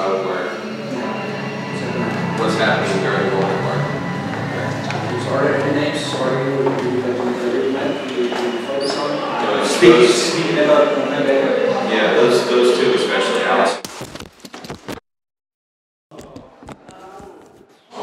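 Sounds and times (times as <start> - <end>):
soft instrument playing: 0.0 - 8.7
man talking: 0.0 - 13.8.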